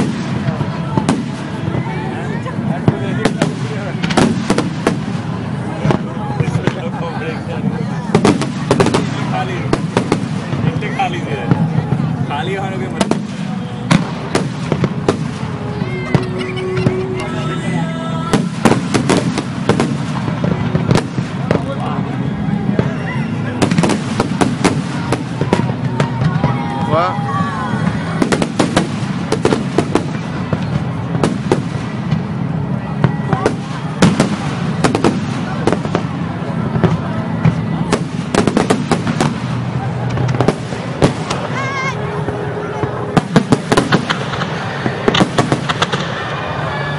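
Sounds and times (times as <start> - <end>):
continuous low rumble: 0.0 - 46.9
fireworks bangs and crackles: 0.0 - 46.9
people's voices: 0.0 - 46.9.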